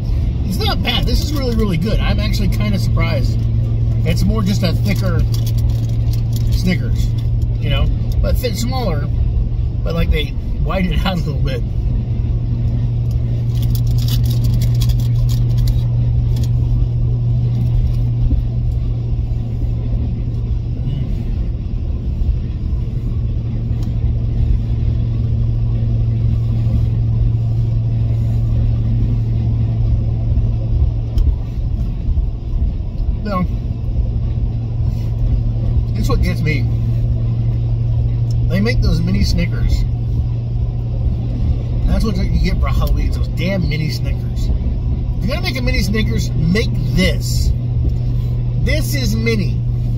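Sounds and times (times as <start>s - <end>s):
car engine drone from inside: 0.0s - 49.9s.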